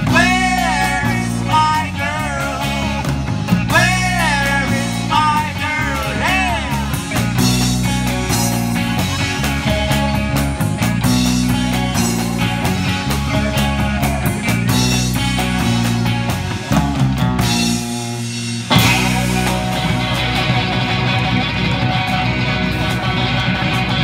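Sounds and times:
bass guitar: 0.0s - 24.0s
drum kit: 0.0s - 24.0s
electric guitars: 0.0s - 24.0s.

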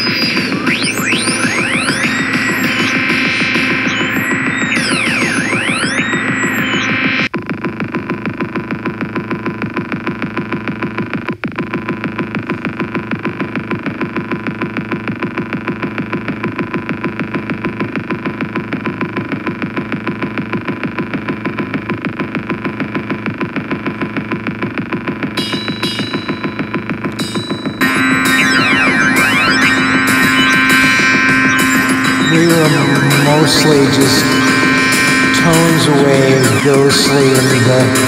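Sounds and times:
gliding synthesizer texture: 0.0s - 7.3s, 27.8s - 38.0s
pulsing synth and drum machine loop: 0.0s - 38.0s.

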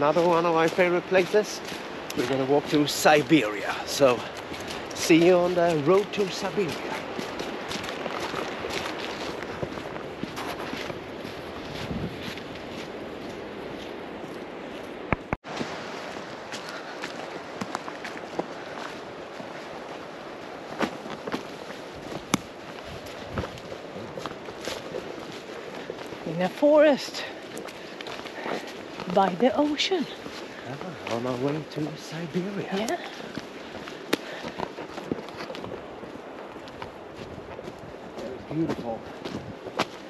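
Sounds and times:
footsteps on pine needles: 0.0s - 40.0s
wind noise on microphone: 6.8s - 16.5s, 17.4s - 26.3s, 33.8s - 40.0s.

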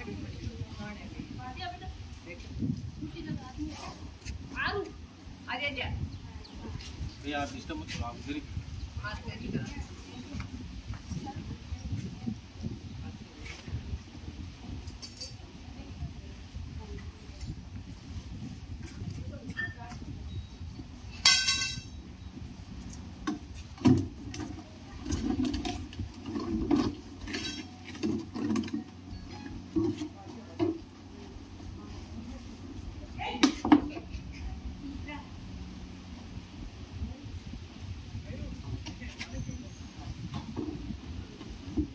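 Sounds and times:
metal hook and jar clinking on paving: 21.1s - 22.0s, 27.2s - 29.5s.

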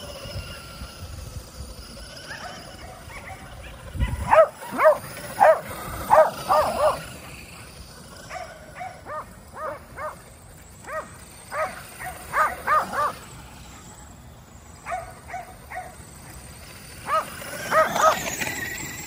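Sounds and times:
dogs barking high-pitched: 2.2s - 13.3s, 14.8s - 16.0s, 17.0s - 18.4s.

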